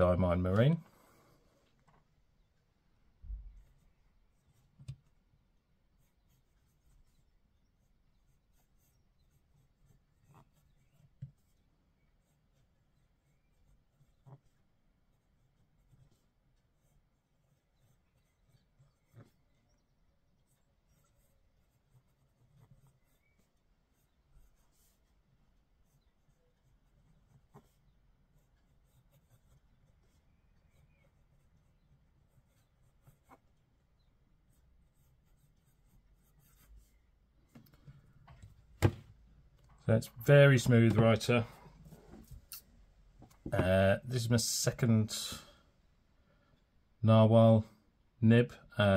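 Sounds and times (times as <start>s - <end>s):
pen nib scratching on paper: 6.0s - 37.1s.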